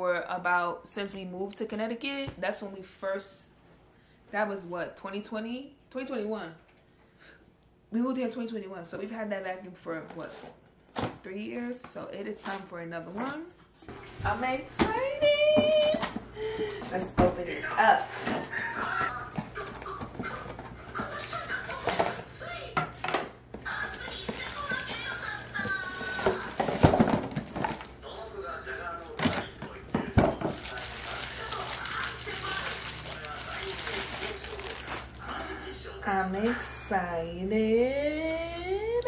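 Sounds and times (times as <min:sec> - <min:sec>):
cardboard packaging rustling: 0:18.5 - 0:22.3, 0:23.5 - 0:28.1, 0:29.0 - 0:35.4.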